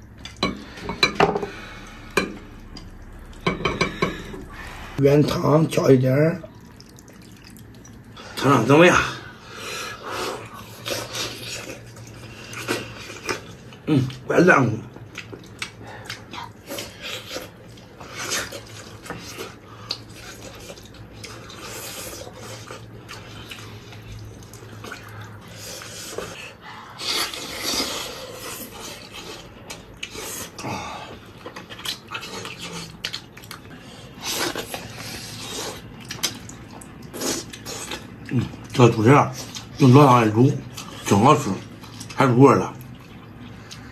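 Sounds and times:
wet chewing and lip smacking: 15.0 - 30.6, 31.3 - 38.8.

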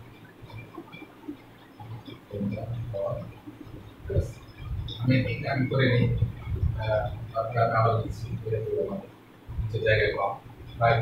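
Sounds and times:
steady low hum: 0.0 - 11.0
man murmuring: 4.1 - 9.0.

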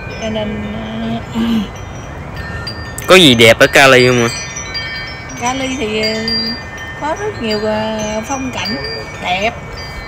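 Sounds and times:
chimes ringing: 0.0 - 10.0
outdoor background noise: 0.0 - 10.0.

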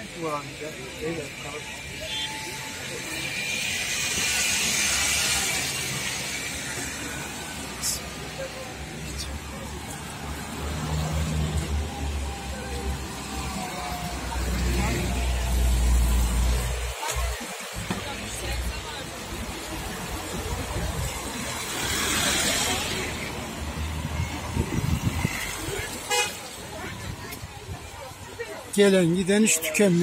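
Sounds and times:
tyres hissing on wet road: 0.0 - 30.0.

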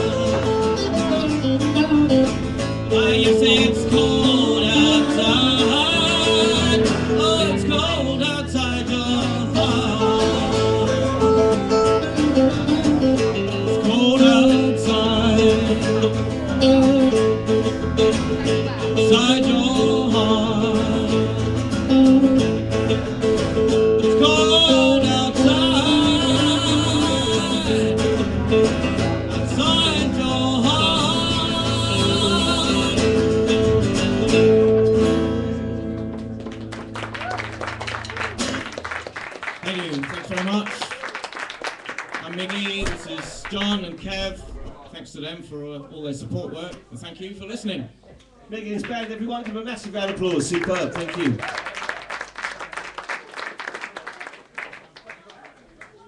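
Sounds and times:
live rock band playing: 0.0 - 39.1
person singing: 2.8 - 12.8, 13.6 - 16.6, 18.7 - 22.3, 24.0 - 28.5, 29.4 - 34.6.

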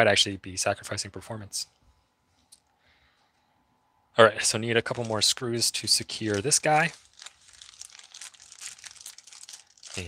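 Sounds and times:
plastic packaging crinkling: 4.8 - 10.0.

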